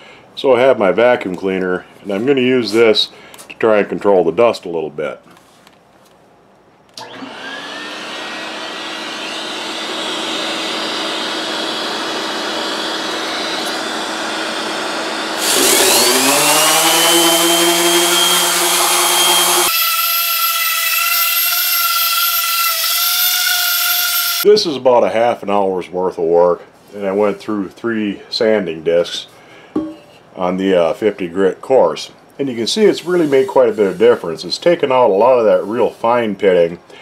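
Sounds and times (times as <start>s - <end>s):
vacuum cleaner motor whine: 7.0s - 24.4s
orbital sander on metal: 8.2s - 24.4s.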